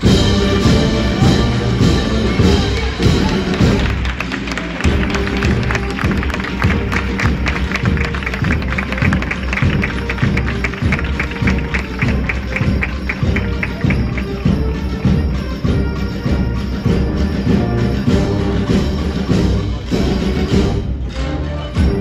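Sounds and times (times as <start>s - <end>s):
quick steady drum beat: 0.0s - 20.8s
band playing a march: 0.0s - 22.0s.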